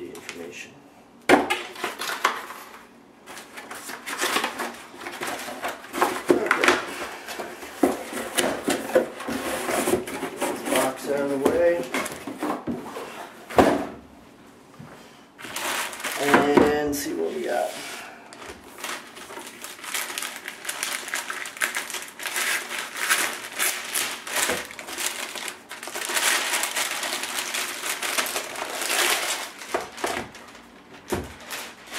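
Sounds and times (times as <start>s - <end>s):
cardboard and foam rustling: 1.8s - 13.8s, 15.4s - 31.9s.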